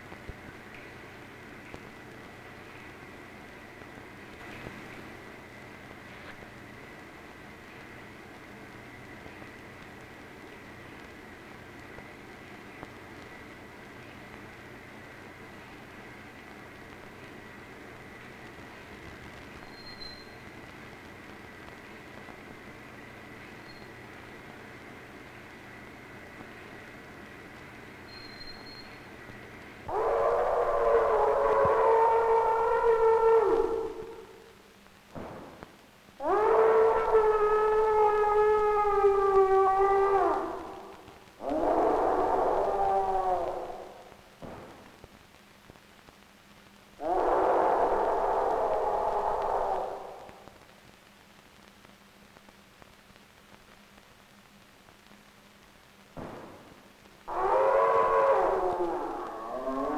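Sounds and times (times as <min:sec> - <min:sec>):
steady hiss: 0:00.0 - 0:59.9.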